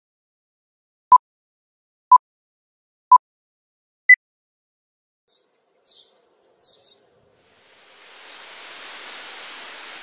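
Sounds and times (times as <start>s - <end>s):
steady rushing hiss: 7.3s - 10.0s.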